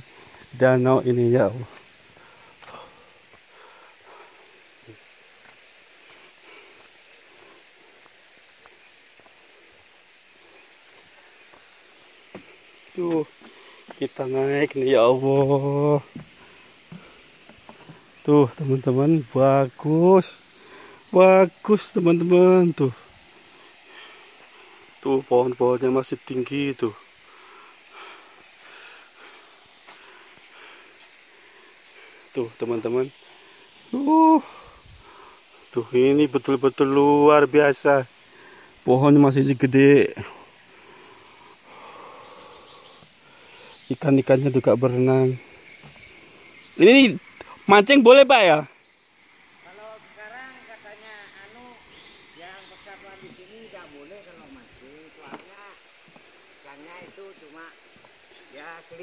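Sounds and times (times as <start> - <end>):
forest ambience: 0.0 - 59.0
steady soft hiss: 0.0 - 59.0.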